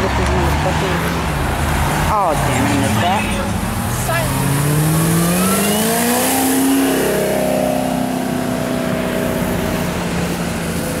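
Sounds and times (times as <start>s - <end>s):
car engine accelerating hard: 0.0s - 11.0s.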